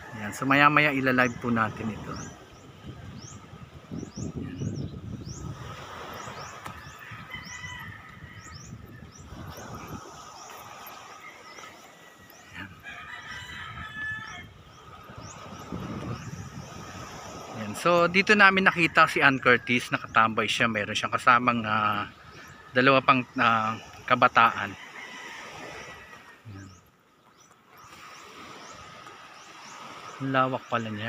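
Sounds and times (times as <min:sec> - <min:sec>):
outdoor background noise: 0:00.0 - 0:31.0
small birds chirping: 0:00.6 - 0:24.8, 0:25.6 - 0:31.0.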